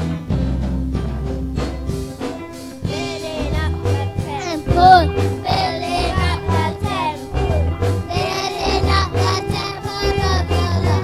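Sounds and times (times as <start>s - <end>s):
instrumental accompaniment with bass line: 0.0s - 11.0s
children singing gospel song: 2.5s - 11.0s.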